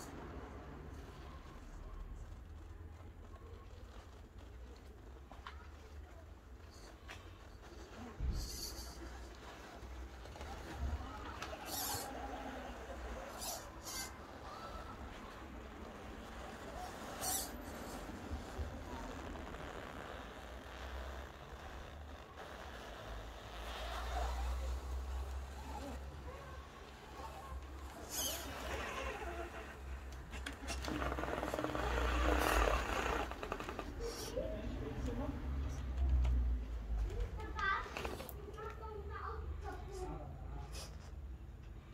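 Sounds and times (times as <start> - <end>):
toy car motor whirring: 0.0 - 34.6.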